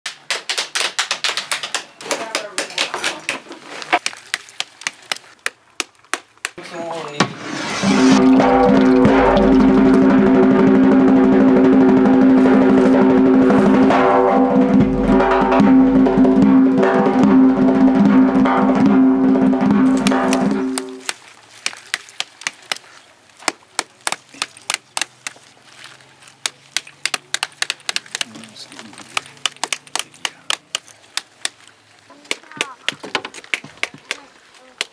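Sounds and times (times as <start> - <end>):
sharp taps and knocks on fruit: 4.0 - 6.6, 23.4 - 25.4, 26.4 - 31.6, 32.2 - 34.2
loud sustained music: 8.1 - 21.0.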